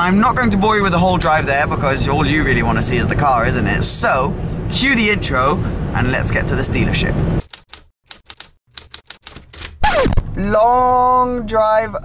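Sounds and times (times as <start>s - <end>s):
car noise: 0.0s - 7.6s, 9.2s - 11.7s
keyboard typing clicks: 7.4s - 9.8s.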